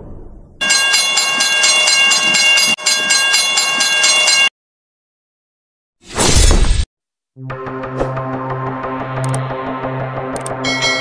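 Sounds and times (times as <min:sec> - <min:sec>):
steady ringing tones: 0:00.6 - 0:04.5.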